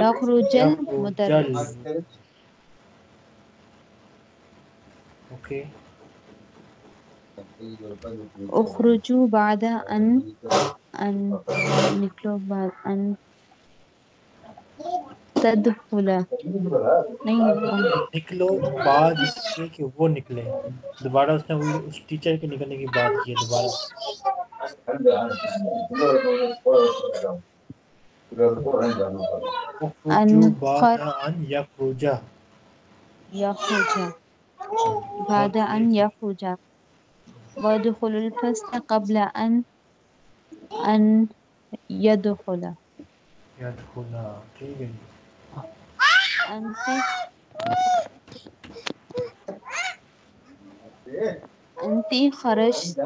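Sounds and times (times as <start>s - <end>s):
second voice speaking: 0.0s - 2.0s, 5.4s - 5.7s, 7.4s - 12.9s, 15.4s - 27.4s, 28.3s - 32.2s, 34.9s - 36.1s, 43.6s - 45.0s, 51.1s - 53.0s
person speaking: 0.0s - 2.1s, 5.4s - 5.7s, 7.4s - 13.2s, 15.4s - 27.4s, 28.3s - 32.2s, 33.4s - 34.2s, 34.9s - 36.6s, 37.3s - 39.6s, 40.6s - 42.8s, 43.6s - 45.8s, 46.5s - 48.1s, 50.7s - 53.0s.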